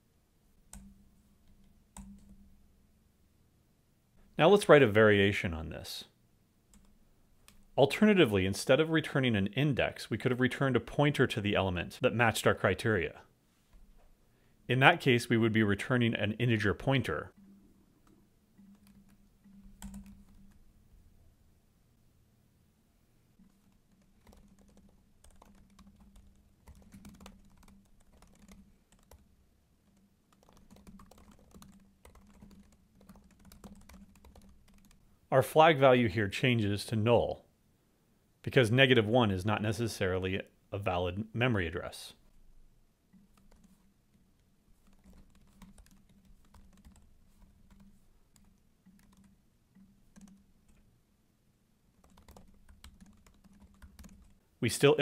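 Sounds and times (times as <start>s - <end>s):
typing on computer keyboard: 0.7s - 2.4s, 18.0s - 20.6s, 23.4s - 35.0s, 43.1s - 43.9s, 44.8s - 50.8s, 52.0s - 54.4s.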